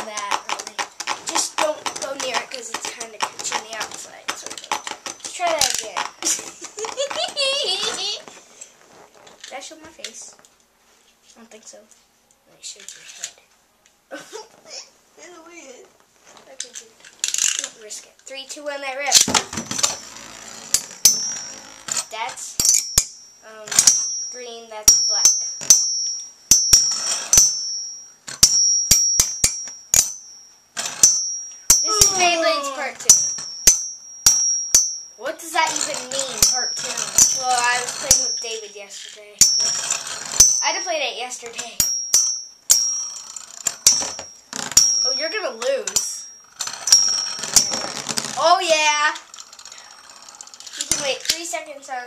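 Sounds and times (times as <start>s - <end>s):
spinning tops rattling on plastic: 0.0s - 8.2s, 35.4s - 41.8s, 42.9s - 51.6s
spinning tops clashing: 19.1s - 51.5s.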